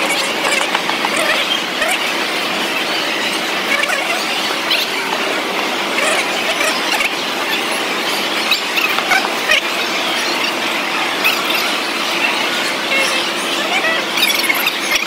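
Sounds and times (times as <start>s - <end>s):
crowded hall din: 0.0s - 15.0s.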